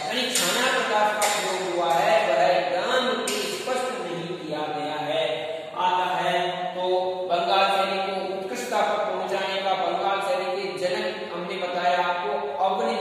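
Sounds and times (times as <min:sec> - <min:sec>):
man talking: 0:00.0 - 0:13.0.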